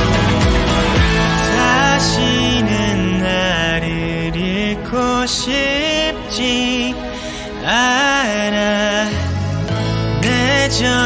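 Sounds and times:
backing track: 0:00.0 - 0:11.0
man singing pop: 0:01.0 - 0:11.0.

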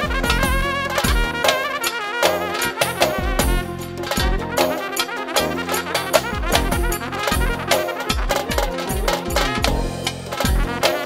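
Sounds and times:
bass drum beat: 0:00.0 - 0:01.8, 0:02.4 - 0:04.8, 0:05.4 - 0:11.0
brass and reed melody: 0:00.0 - 0:11.0.

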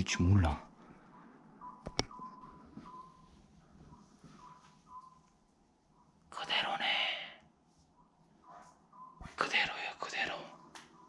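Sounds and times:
man whispering: 0:00.0 - 0:00.7, 0:06.3 - 0:07.4, 0:09.4 - 0:10.6.

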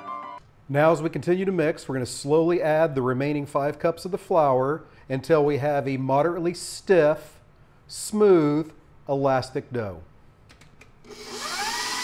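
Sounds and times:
stand mixer motor whining: 0:11.1 - 0:12.0.

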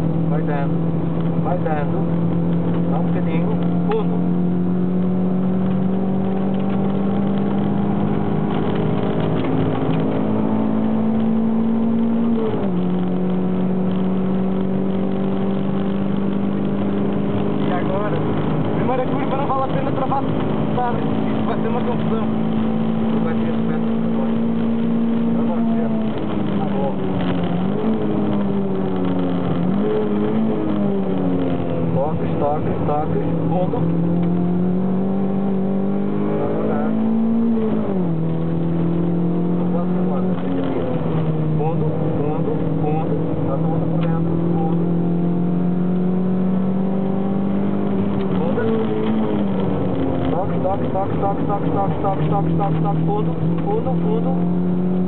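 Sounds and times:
car engine accelerating: 0:00.0 - 0:55.0.

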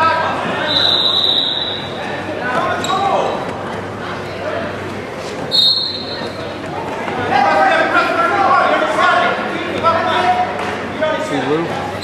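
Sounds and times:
voices shouting in gym hall: 0:00.0 - 0:12.0
high whistle: 0:00.6 - 0:01.9, 0:05.5 - 0:06.3.

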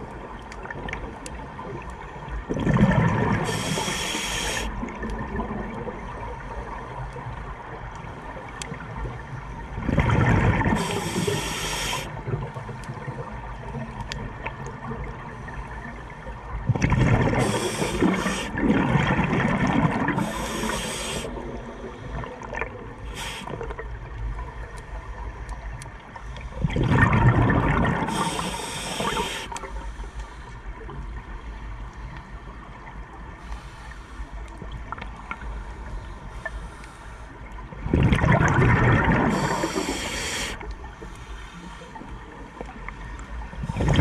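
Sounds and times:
faint clicks: 0:00.0 - 0:02.0, 0:10.9 - 0:15.2, 0:23.3 - 0:26.5, 0:28.2 - 0:31.2, 0:33.5 - 0:37.6
exhaled bubbles underwater: 0:00.0 - 0:25.8, 0:26.5 - 0:29.8, 0:37.6 - 0:40.8, 0:42.4 - 0:44.0
exhaled bubbles gushing: 0:02.4 - 0:06.3, 0:09.7 - 0:11.4, 0:16.6 - 0:21.6, 0:26.6 - 0:29.4, 0:37.8 - 0:40.0, 0:43.6 - 0:44.0
regulator breath hiss: 0:03.4 - 0:04.7, 0:10.8 - 0:12.1, 0:17.4 - 0:18.6, 0:20.2 - 0:22.1, 0:23.0 - 0:23.6, 0:28.0 - 0:30.6, 0:39.3 - 0:40.6.

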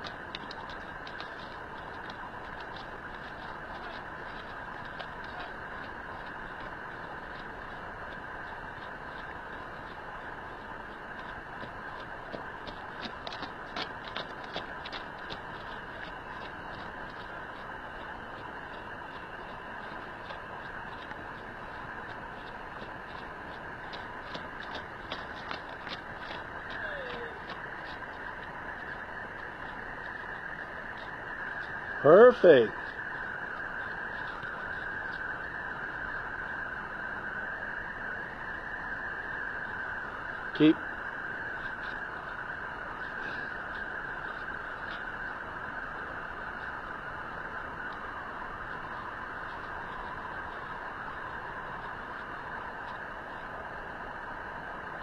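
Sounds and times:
horse hooves on dirt: 0:00.0 - 0:37.8, 0:38.8 - 0:55.0
steady background hiss: 0:00.0 - 0:55.0.

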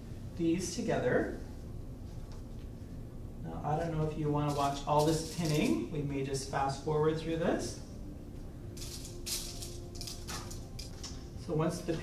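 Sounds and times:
shaker rhythm: 0:04.4 - 0:06.0, 0:08.7 - 0:12.0.

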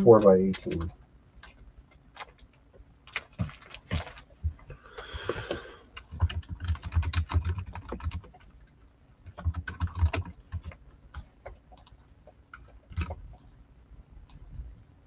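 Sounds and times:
typing on computer keyboard: 0:00.1 - 0:02.4, 0:05.4 - 0:08.6, 0:09.2 - 0:13.4.

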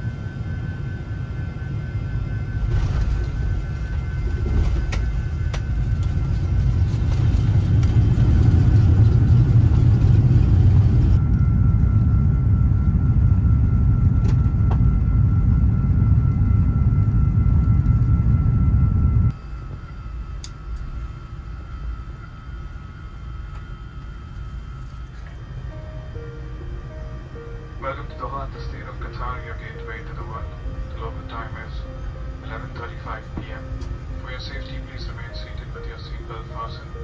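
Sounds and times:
airplane rumble inside cabin: 0:00.0 - 0:37.0
quiet cabin hum: 0:00.1 - 0:37.0.

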